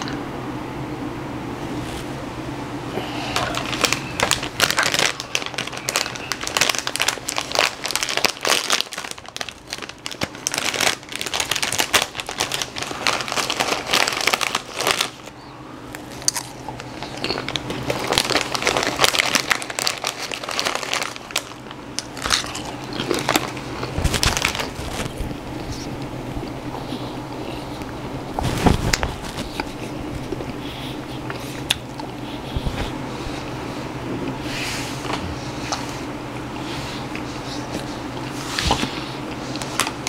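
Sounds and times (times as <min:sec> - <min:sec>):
chips being chewed: 0:03.3 - 0:30.6.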